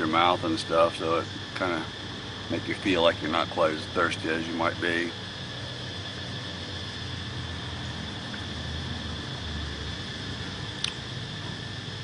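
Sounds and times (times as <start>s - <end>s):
thin high whine: 0.0s - 12.0s.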